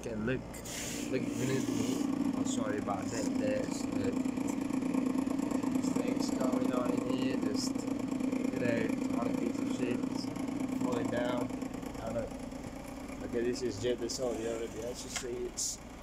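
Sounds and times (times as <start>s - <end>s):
voices: 1.0s - 7.8s, 8.4s - 12.3s, 13.2s - 15.8s.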